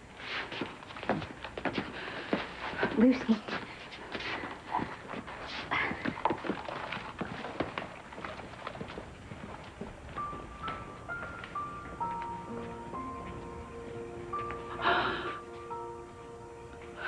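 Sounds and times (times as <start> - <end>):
footsteps on wooden floor: 0.3 - 15.9
soft background music: 8.0 - 17.0.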